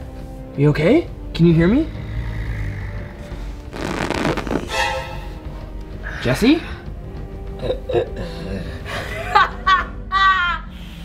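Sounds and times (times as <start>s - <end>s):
low drone: 0.0s - 9.1s.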